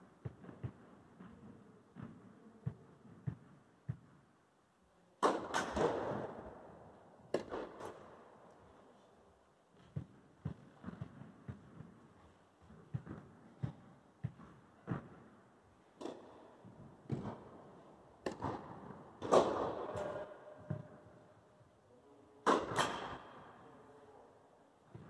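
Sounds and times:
tennis ball bouncing: 0.2 - 4.1, 7.3 - 8.0, 9.8 - 12.1, 12.7 - 15.4, 16.0 - 21.0
players' footsteps: 0.2 - 4.2, 9.7 - 15.4.

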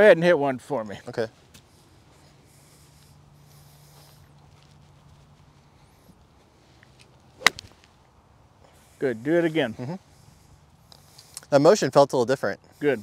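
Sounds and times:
golf club striking ball: 7.4 - 7.9.

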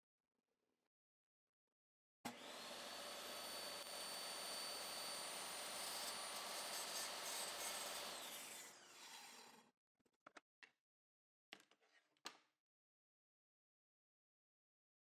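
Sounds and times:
table saw motor whining: 2.3 - 9.7.

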